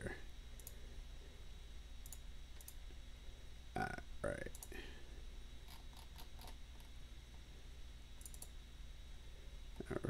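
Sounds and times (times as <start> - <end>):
low steady hum: 0.0 - 10.0
computer mouse clicks: 0.6 - 0.8, 2.0 - 2.8, 8.2 - 8.6.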